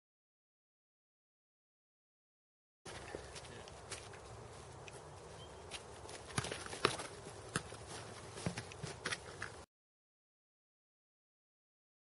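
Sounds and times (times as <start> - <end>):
footsteps scuffing on dirt: 2.9 - 9.6.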